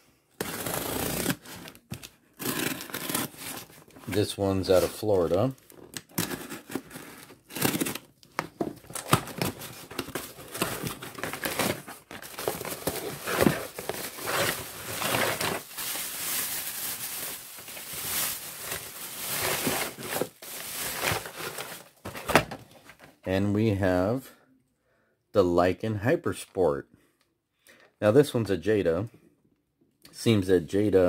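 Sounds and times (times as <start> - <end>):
packing material crinkling: 0.4 - 22.4.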